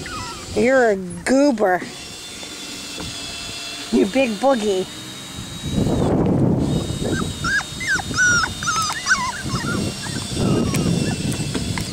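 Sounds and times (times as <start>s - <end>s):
puppies whimpering: 0.0s - 1.5s, 6.9s - 11.6s.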